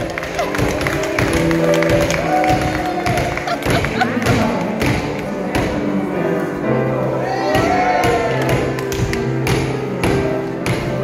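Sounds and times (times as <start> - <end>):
live instrumental music: 0.0 - 11.0.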